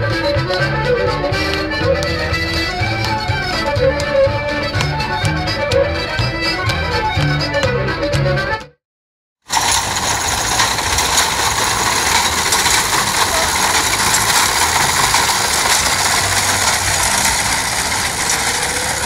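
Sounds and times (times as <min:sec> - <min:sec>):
reaper-binder mechanical clatter: 0:09.5 - 0:19.0.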